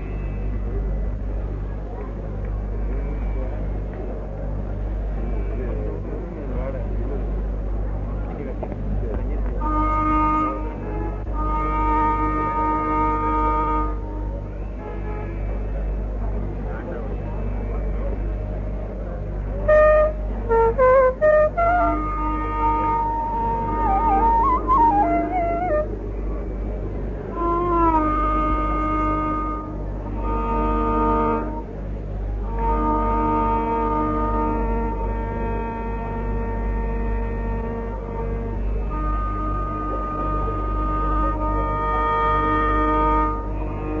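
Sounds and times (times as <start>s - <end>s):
faint murmuring voices: 0.0s - 44.0s
low electrical hum and rumble: 0.0s - 44.0s
bamboo flute melody: 9.4s - 44.0s.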